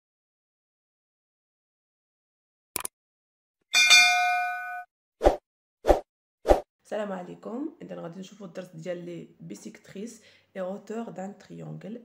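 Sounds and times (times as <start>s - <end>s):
bell-like notification chime: 3.8s - 4.9s.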